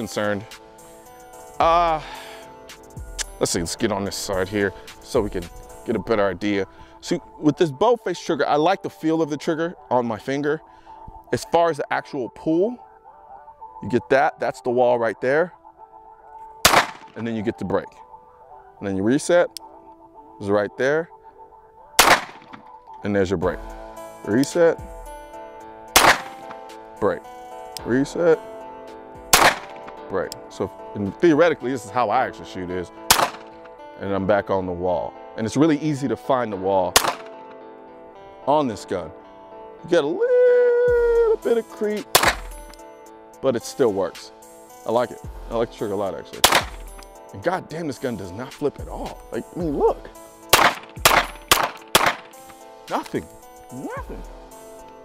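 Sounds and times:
background music: 0.0 - 55.0
pistol shot: 16.6 - 17.2, 22.0 - 22.6, 26.0 - 26.6, 29.3 - 30.0, 33.1 - 33.5, 37.0 - 37.4, 42.1 - 42.6, 46.4 - 47.0, 50.5 - 52.5.

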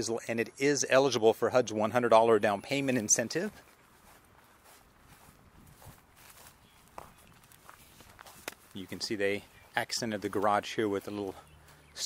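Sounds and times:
faint footsteps in yard: 1.8 - 12.0.

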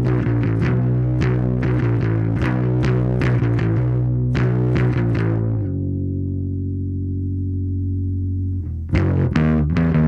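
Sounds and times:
overdriven electric bass: 0.0 - 10.0.

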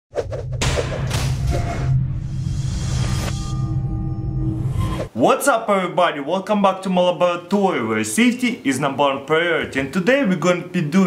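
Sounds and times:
whooshes: 0.1 - 5.1
low bass drone: 0.4 - 5.0.

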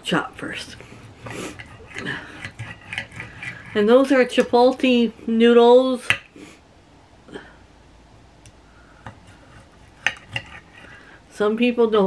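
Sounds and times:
cutlery tapping a ceramic plate: 10.0 - 10.6.

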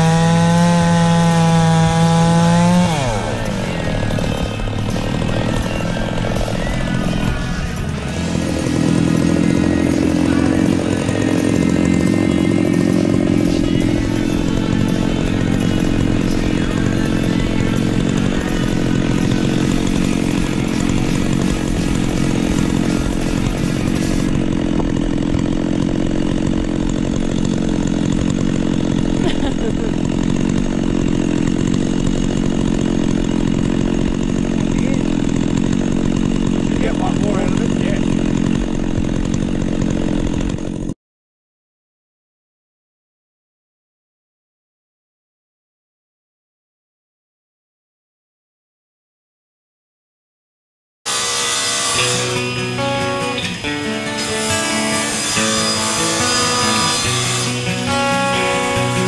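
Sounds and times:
chainsaw idling: 0.0 - 41.0, 51.1 - 59.0.

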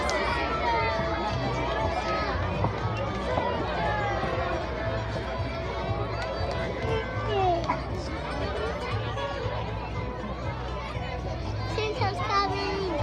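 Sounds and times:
crowd chattering: 0.0 - 13.0
music playing: 0.0 - 13.0.

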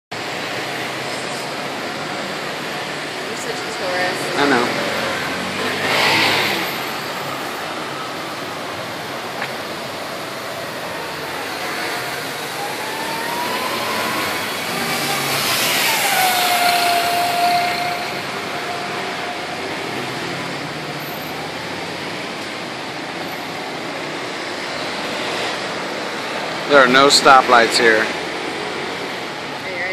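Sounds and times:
bus passing with whine: 0.1 - 29.9
cars and scooters passing: 0.1 - 29.9.

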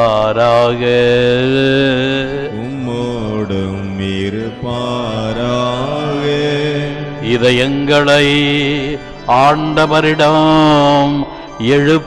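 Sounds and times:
person chanting over loudspeakers: 0.0 - 12.0.

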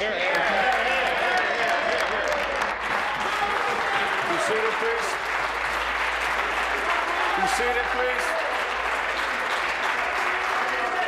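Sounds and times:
people applauding: 0.0 - 11.0.

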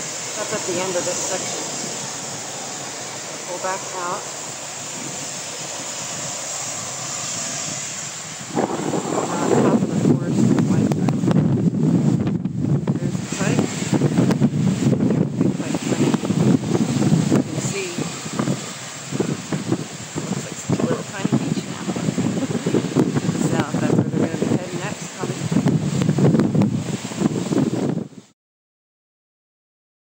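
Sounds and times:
wind buffeting microphone: 0.0 - 28.3
ocean surf washing: 0.0 - 28.4.

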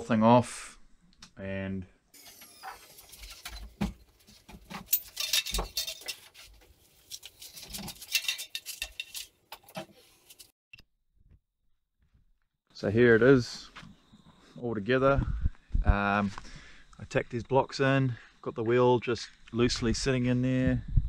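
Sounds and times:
metal bike parts clinking: 3.0 - 10.5.

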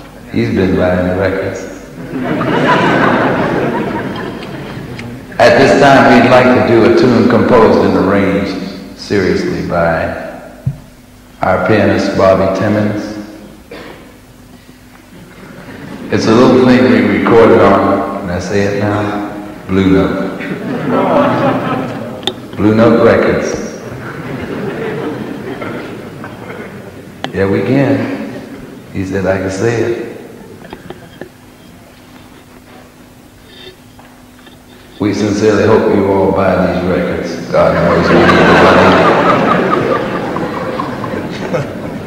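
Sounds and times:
background hiss: 0.0 - 42.0
faint steady hum: 0.0 - 42.0.

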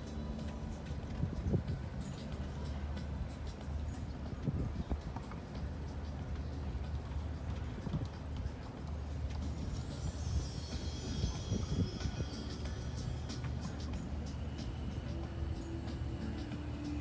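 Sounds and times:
horse hoofbeats: 0.0 - 17.0
steady low hum: 0.0 - 17.0.

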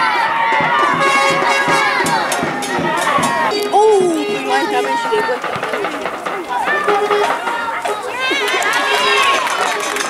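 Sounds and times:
people shouting and calling out: 0.0 - 10.0.

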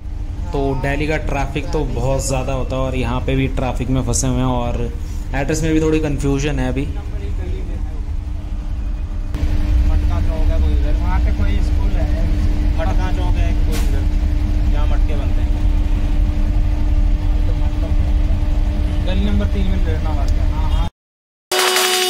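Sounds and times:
auto-rickshaw engine rumble: 0.0 - 20.8
steady hum: 0.0 - 20.9
people talking: 0.4 - 8.2, 9.8 - 15.6, 17.2 - 20.9.

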